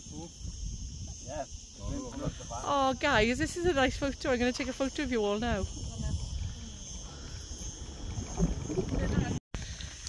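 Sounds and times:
high-pitched insect chorus: 0.0s - 10.0s.

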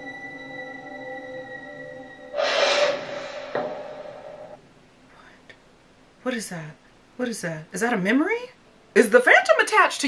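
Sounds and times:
eerie sustained drone: 1.9s - 4.6s
harsh rasping scrape: 2.4s - 4.6s.

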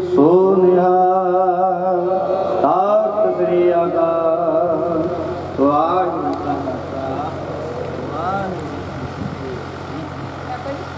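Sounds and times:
congregation voices: 0.0s - 10.9s
low electrical hum: 0.0s - 10.9s.

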